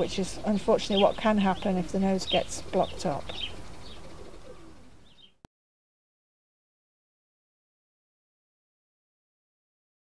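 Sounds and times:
low bird coo: 0:01.0 - 0:05.4.

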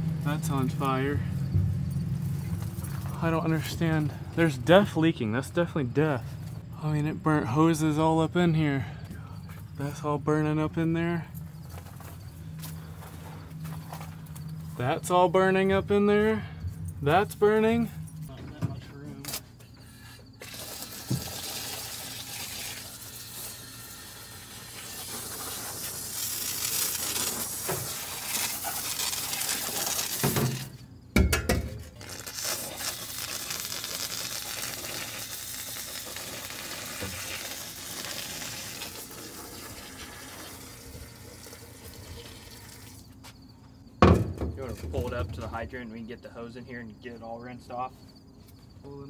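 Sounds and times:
hose water spraying hiss: 0:20.4 - 0:30.8, 0:32.0 - 0:43.0.

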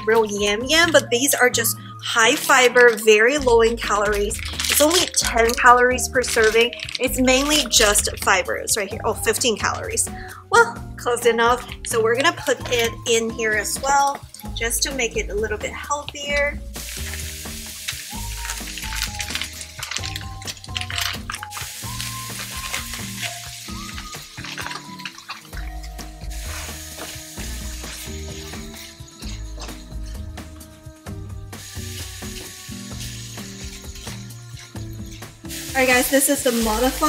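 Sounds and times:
background music: 0:00.0 - 0:37.0
food sizzling in frying pan: 0:02.2 - 0:08.3, 0:16.6 - 0:37.0
spatula scraping pan: 0:21.4 - 0:37.0.

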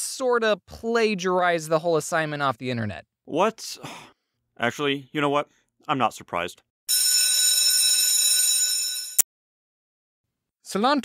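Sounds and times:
electric school bell ringing: 0:06.9 - 0:09.2.

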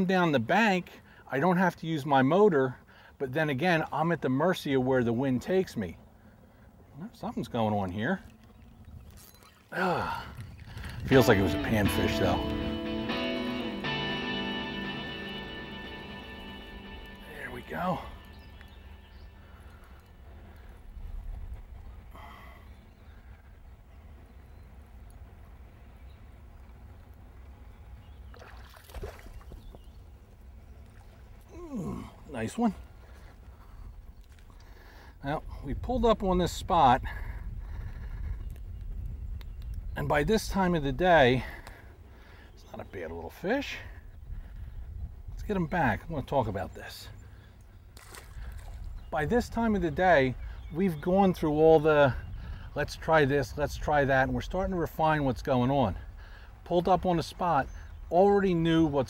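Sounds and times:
faint water sounds: 0:00.0 - 0:38.6, 0:39.3 - 0:59.0
low outdoor rumble: 0:03.6 - 0:59.0
water sloshing: 0:07.9 - 0:11.6, 0:27.7 - 0:34.8, 0:48.0 - 0:49.0
fish thrashing splashes: 0:28.3 - 0:29.7, 0:48.0 - 0:48.8.

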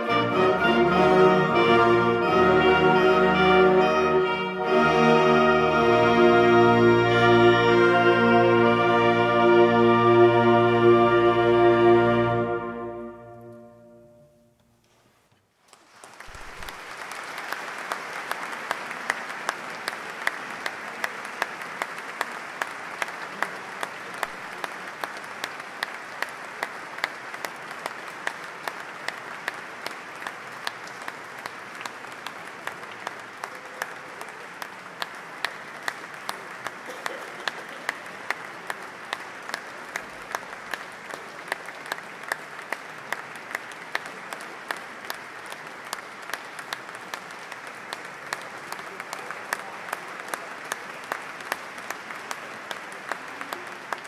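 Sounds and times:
audience applauding: 0:15.6 - 0:54.0.

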